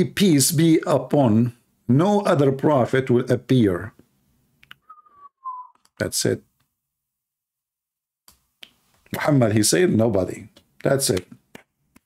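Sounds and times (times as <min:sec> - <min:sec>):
person whistling: 0:04.8 - 0:05.9.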